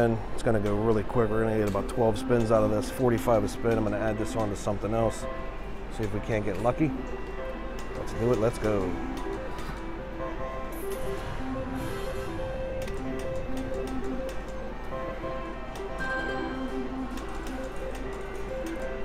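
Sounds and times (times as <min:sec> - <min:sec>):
reels ticking and clicking: 0:00.0 - 0:05.3, 0:05.9 - 0:10.0
slot machine reels spinning: 0:07.8 - 0:19.0
beeping electronic tune: 0:09.0 - 0:17.9.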